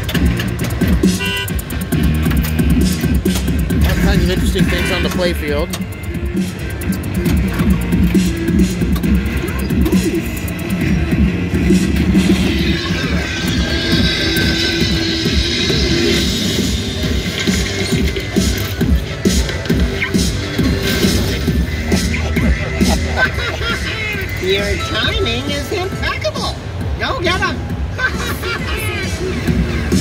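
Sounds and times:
pinball game music and effects: 0:00.0 - 0:24.9.

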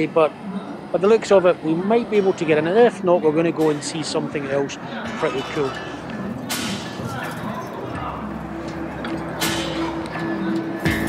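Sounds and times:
people in open square: 0:00.0 - 0:11.0
traffic: 0:00.0 - 0:11.0
single sharp crack: 0:06.4 - 0:07.0.

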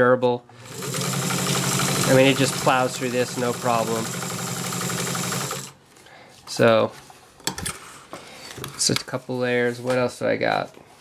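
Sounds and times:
sewing machine running: 0:00.6 - 0:05.8.

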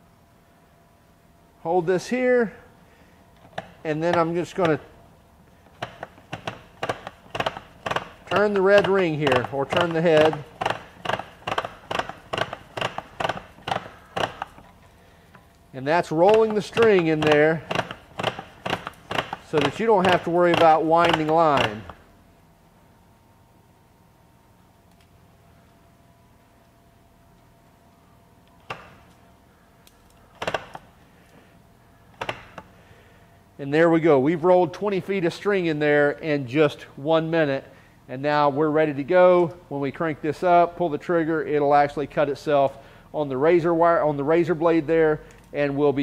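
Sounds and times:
plastic clicks and knocks: 0:03.4 - 0:04.8, 0:05.7 - 0:14.8, 0:16.3 - 0:22.0, 0:32.1 - 0:32.7.

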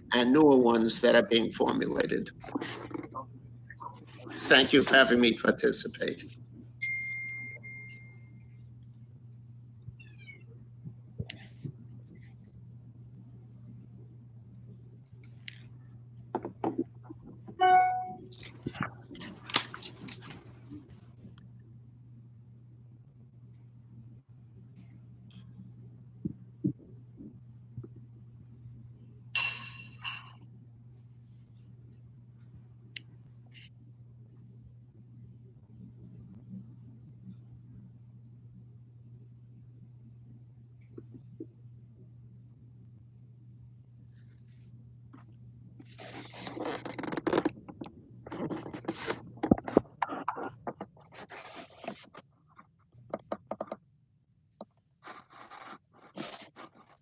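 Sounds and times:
steady low hum: 0:00.0 - 0:57.0
rustling and scraping handling noise: 0:44.2 - 0:53.8, 0:54.6 - 0:57.0.

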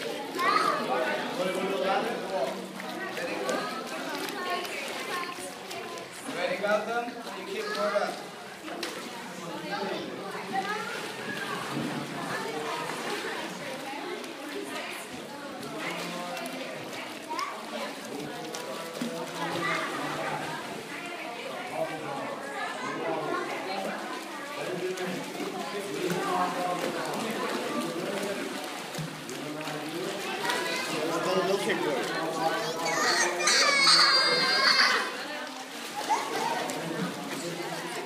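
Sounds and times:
chatter of voices: 0:00.0 - 0:38.0.

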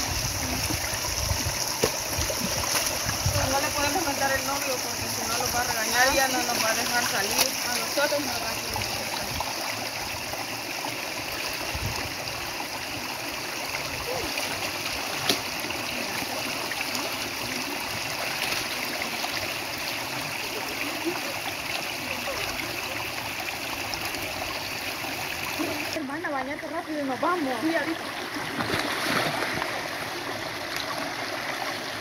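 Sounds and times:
river water flowing: 0:00.0 - 0:32.0
splashing of clothes washed: 0:01.7 - 0:04.0, 0:28.5 - 0:29.8.

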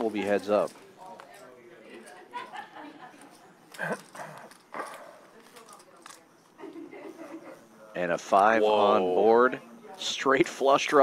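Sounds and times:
murmured voices: 0:00.0 - 0:05.5.

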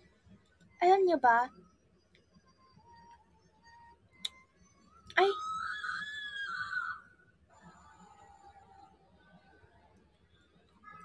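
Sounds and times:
woman squealing: 0:05.2 - 0:07.0.

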